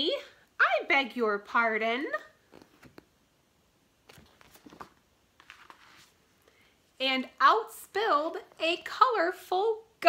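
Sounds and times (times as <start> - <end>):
paper page being turned: 4.0 - 6.2.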